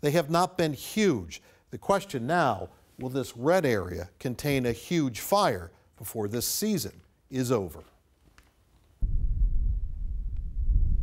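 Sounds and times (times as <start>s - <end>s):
wind buffeting microphone: 9.0s - 11.0s.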